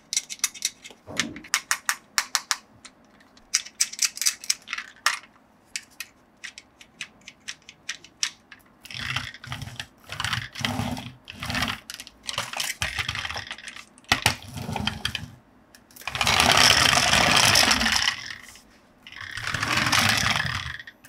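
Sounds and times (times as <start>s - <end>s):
toy wheels rolling on ridged surface: 8.9s - 15.4s, 16.0s - 20.9s.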